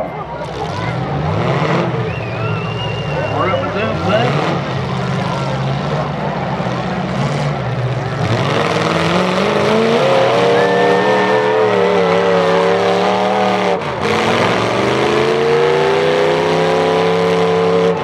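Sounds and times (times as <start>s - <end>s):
car engines revving hard: 0.0s - 18.0s.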